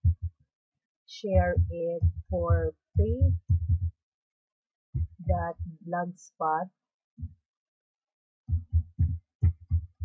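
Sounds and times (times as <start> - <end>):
low dull thumps: 0.0 - 0.3, 1.2 - 3.9, 5.0 - 5.8, 8.5 - 10.0.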